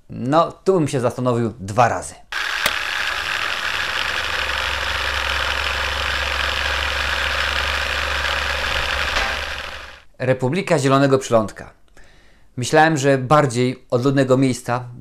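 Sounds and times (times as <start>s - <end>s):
projector click: 2.4s - 4.2s
film projector rattling: 2.4s - 10.0s.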